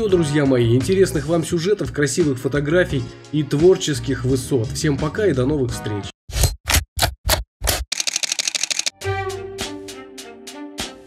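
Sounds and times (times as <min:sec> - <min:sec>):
camera shutter clicks: 0:07.7 - 0:09.0.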